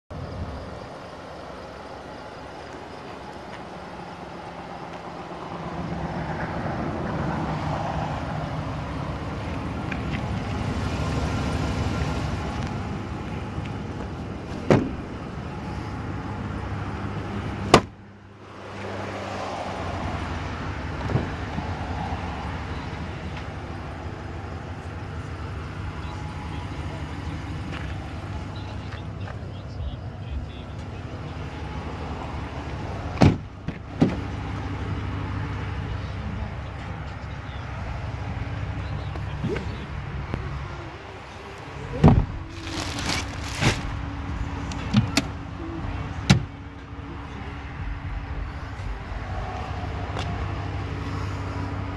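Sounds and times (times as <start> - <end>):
low vehicle hum: 0.1 - 51.9
truck door latch clicks: 17.7 - 18.0.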